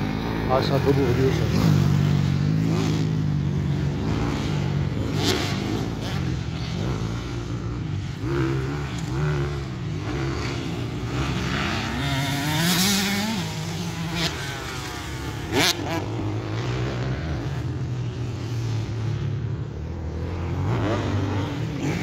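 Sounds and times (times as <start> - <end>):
dirt bike engines revving: 0.0 - 22.0.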